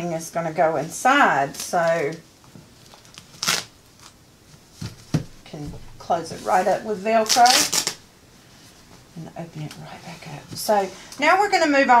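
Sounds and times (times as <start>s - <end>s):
fabric rustling: 0.6s - 11.1s.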